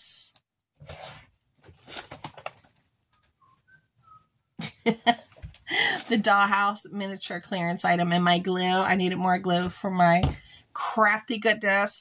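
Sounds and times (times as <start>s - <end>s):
faint whistle-like notes: 3.1s - 4.5s
woman laughing loudly: 4.6s - 6.1s.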